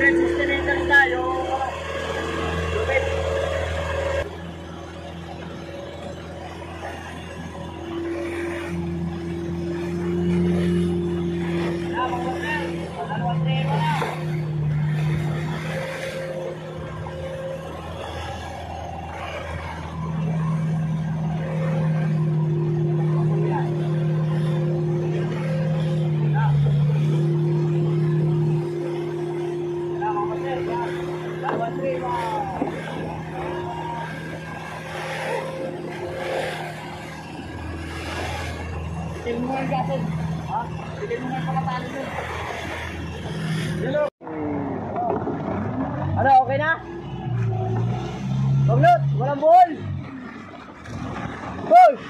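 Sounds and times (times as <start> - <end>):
boat engine humming: 0.0 - 52.0.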